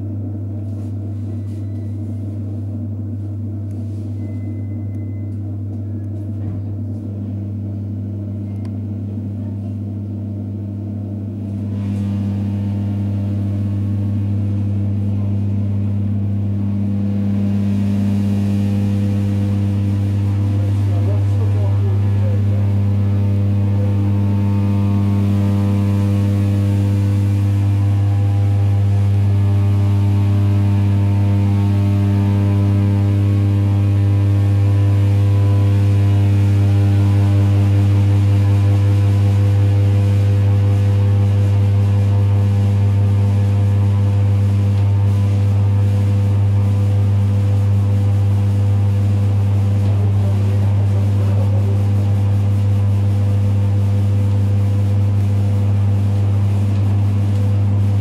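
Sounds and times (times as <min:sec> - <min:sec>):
loud low electric hum: 0:00.0 - 0:58.0.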